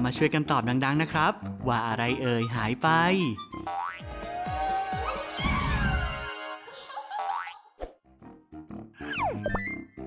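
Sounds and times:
light children's music: 0:00.0 - 0:07.7.

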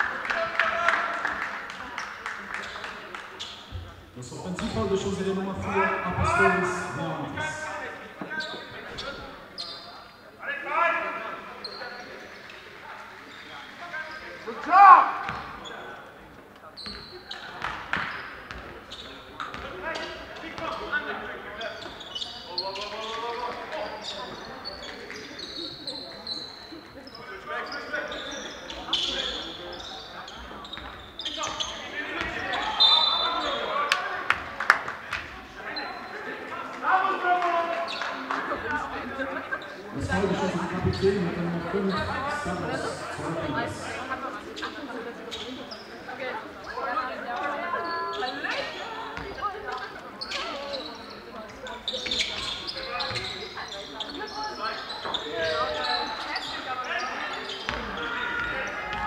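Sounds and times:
people calling out: 0:04.2 - 0:07.7
loud shout: 0:14.6 - 0:15.3
shoes squeaking: 0:47.8 - 0:59.0.

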